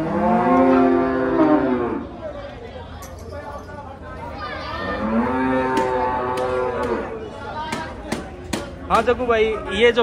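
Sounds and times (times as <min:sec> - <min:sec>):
cow mooing: 0:00.0 - 0:02.0, 0:04.8 - 0:07.1.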